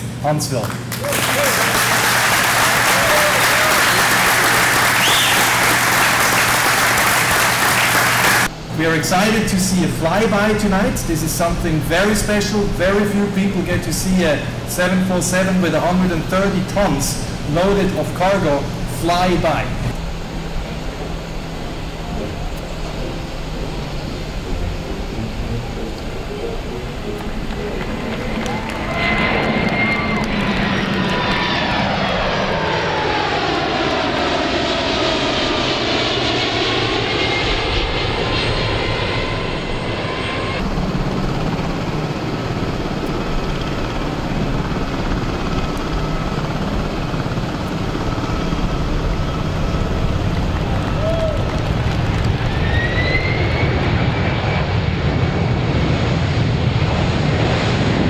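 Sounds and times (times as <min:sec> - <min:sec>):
jet engine rumble: 0:00.0 - 0:58.0
jet engine whine: 0:00.0 - 0:58.0.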